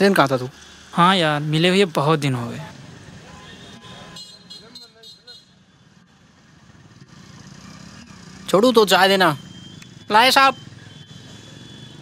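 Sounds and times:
traffic on nearby road: 0.0s - 12.0s.

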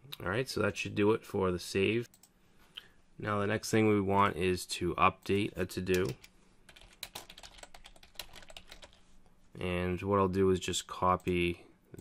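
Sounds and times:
computer keyboard typing: 5.9s - 9.0s.

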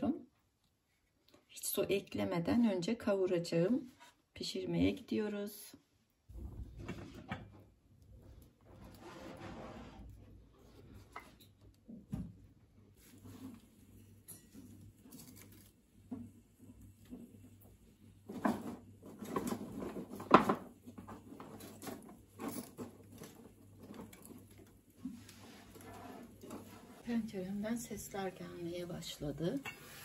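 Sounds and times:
wood fire crackling: 12.6s - 30.0s.

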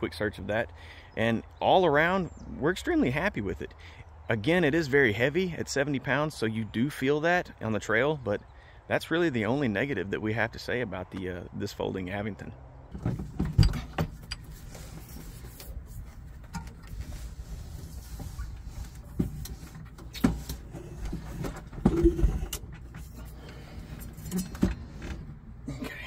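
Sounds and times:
bike frames knocking and rattling: 13.0s - 14.8s, 19.2s - 23.2s.

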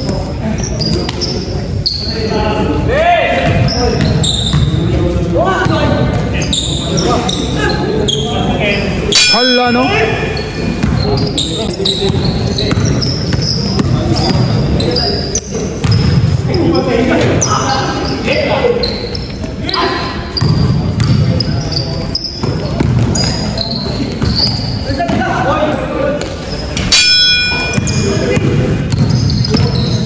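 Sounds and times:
sneakers squeaking: 0.0s - 2.7s, 3.3s - 30.0s
basketball bouncing on court: 3.4s - 4.8s, 12.0s - 14.6s, 15.8s - 16.3s, 20.4s - 21.4s, 22.4s - 23.4s, 24.1s - 25.3s, 27.7s - 30.0s.

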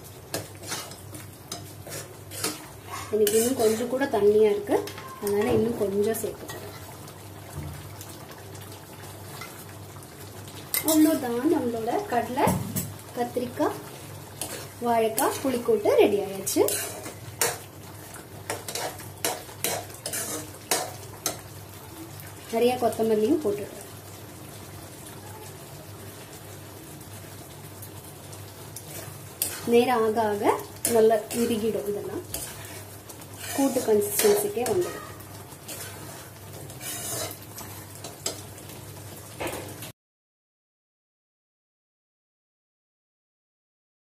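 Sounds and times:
food gently sizzling: 0.0s - 39.9s
spatula scraping a metal pan: 0.3s - 4.1s, 16.5s - 17.6s, 18.5s - 21.4s, 28.9s - 29.9s, 32.2s - 38.4s.

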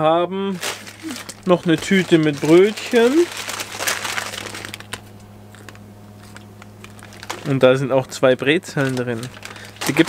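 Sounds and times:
paper bag crinkling: 0.5s - 7.8s, 8.6s - 10.0s.

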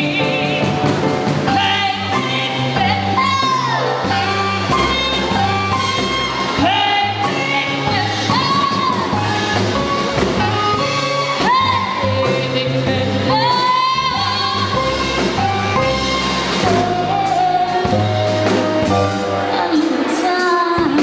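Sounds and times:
steady bass notes: 0.0s - 20.2s
jazz band playing: 0.0s - 21.0s.

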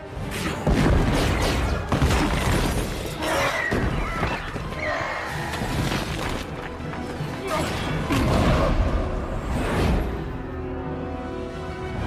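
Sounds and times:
orchestral score: 0.0s - 12.0s
crashing impacts and shattering stone: 0.6s - 4.8s.

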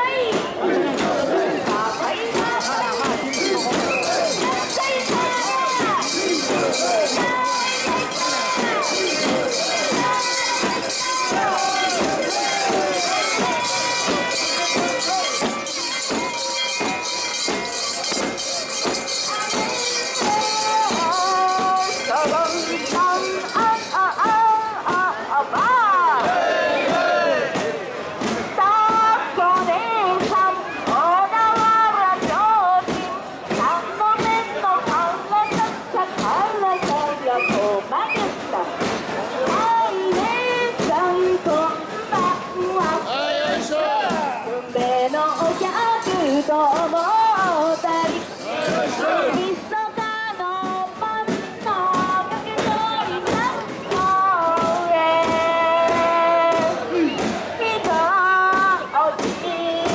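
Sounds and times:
crowd chanting and singing: 0.0s - 59.9s
regular drum beat: 1.0s - 25.0s
high steady ringing: 2.0s - 24.2s.

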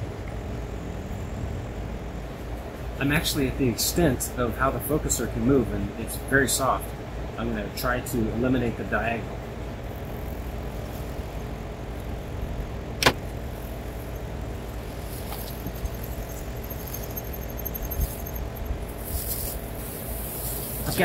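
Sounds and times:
low outdoor rumble: 0.0s - 21.0s
small handling ticks: 9.8s - 21.0s
sharp click: 13.0s - 13.3s.

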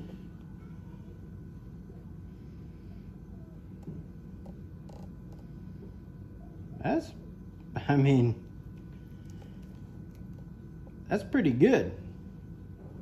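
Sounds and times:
background hum: 0.0s - 13.0s.

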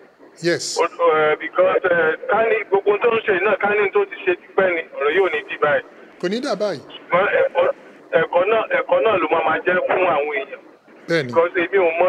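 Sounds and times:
man talking over phone line: 0.4s - 12.0s.

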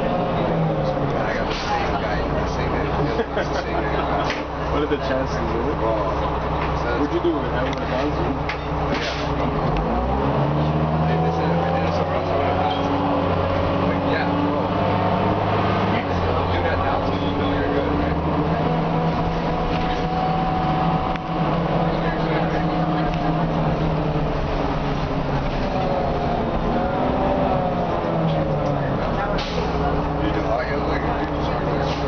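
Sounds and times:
bus diesel engine accelerating: 0.0s - 32.0s.

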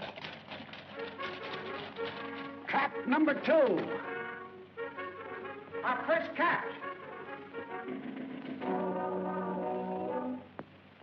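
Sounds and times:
orchestral music with brass: 0.9s - 10.5s.

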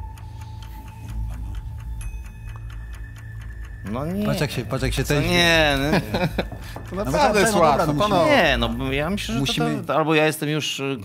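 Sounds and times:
steady low hum: 0.0s - 9.9s
rapid clock ticking: 0.0s - 10.1s.

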